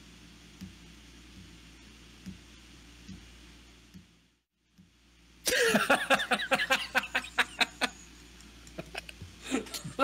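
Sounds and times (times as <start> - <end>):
faint room hum: 0.0 - 10.0
loud laughter: 5.5 - 8.0.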